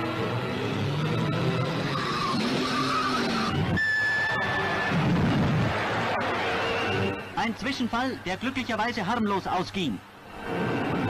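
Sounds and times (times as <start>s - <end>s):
newsreel music: 0.0s - 11.0s.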